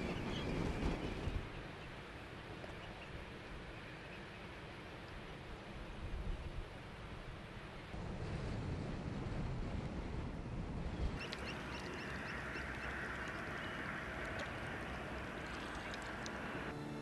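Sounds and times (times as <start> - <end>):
shorebirds and gulls calling: 11.2 - 16.7.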